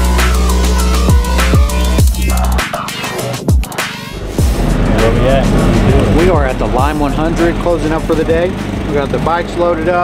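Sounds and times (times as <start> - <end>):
man talking: 5.0 - 10.0.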